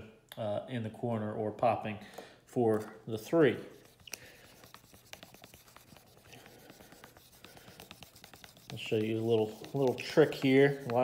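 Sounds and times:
rubbing on a whiteboard: 0:03.6 - 0:11.0.

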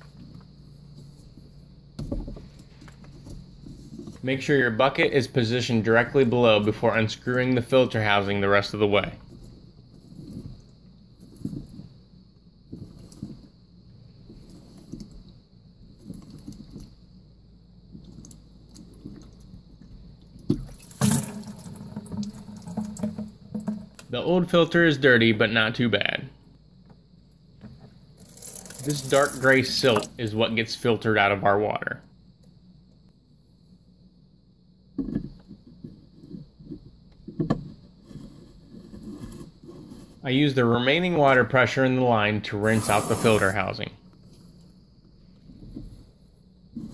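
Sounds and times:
water splashing into plastic bucket: 0:20.4 - 0:24.1, 0:28.2 - 0:30.2
plastic housing knocks and scrapes: 0:21.8 - 0:24.1, 0:35.0 - 0:40.2.

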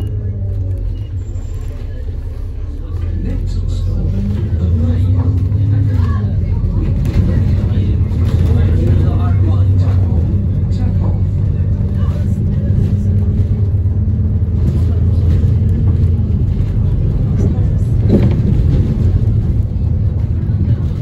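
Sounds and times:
bus engine drone: 0:00.0 - 0:21.0
road noise: 0:00.0 - 0:21.0.

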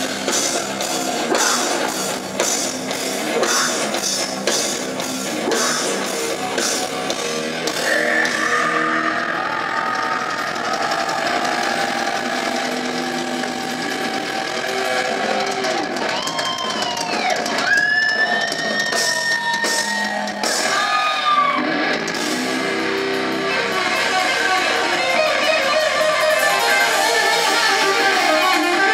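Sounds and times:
electric guitars ringing notes: 0:00.0 - 0:16.1, 0:21.6 - 0:28.9
heavy rock band playing: 0:00.0 - 0:28.9
crowd shouting: 0:00.2 - 0:04.2, 0:05.2 - 0:22.1
high wailing glides: 0:07.8 - 0:15.7.

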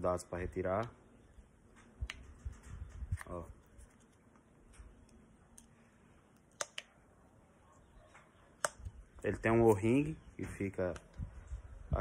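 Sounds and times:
light clicks of metal parts: 0:01.7 - 0:06.9.

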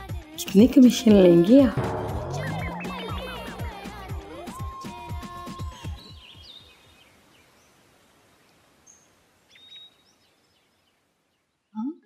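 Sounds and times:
background music: 0:00.0 - 0:06.2
brief rising tone: 0:01.7 - 0:05.1.

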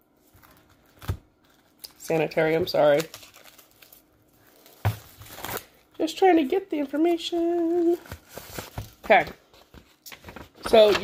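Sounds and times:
plastic wrap crinkling: 0:00.1 - 0:06.2, 0:06.8 - 0:11.0.

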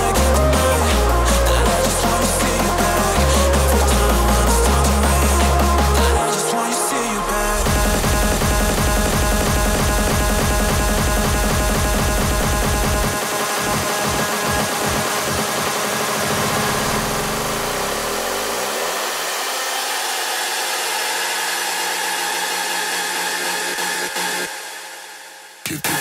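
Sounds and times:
held synth chords: 0:00.0 - 0:25.3.

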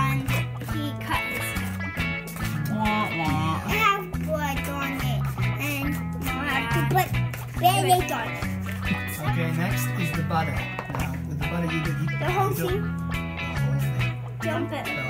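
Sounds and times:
background music with bass: 0:00.0 - 0:15.0
voices talking: 0:00.0 - 0:15.0.

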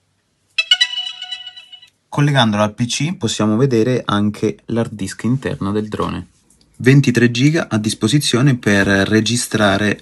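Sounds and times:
short electronic chime: 0:00.6 - 0:01.9.

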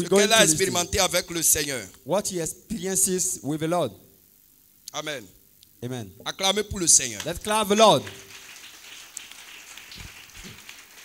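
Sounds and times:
congregation applauding: 0:07.1 - 0:11.0.

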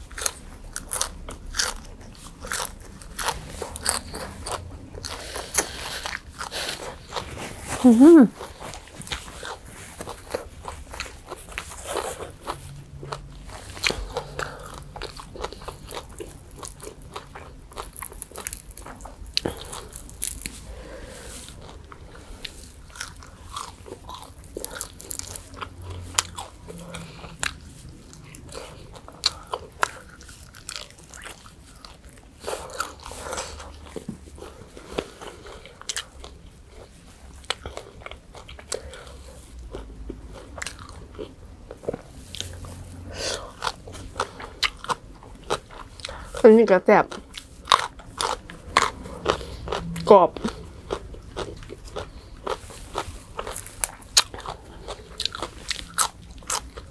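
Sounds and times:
crunchy chewing: 0:00.0 - 0:46.5, 0:47.1 - 0:56.9.

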